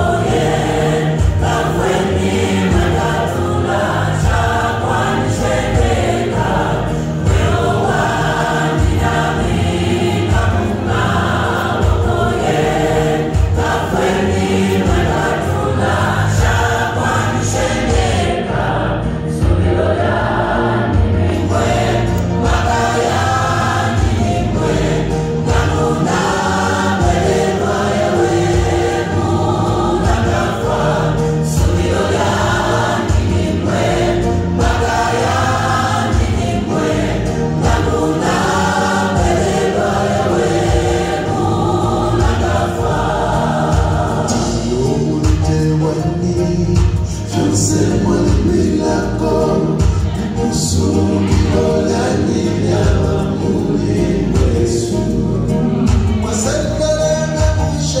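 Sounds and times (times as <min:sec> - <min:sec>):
gospel choir singing: 0:00.0 - 0:58.0.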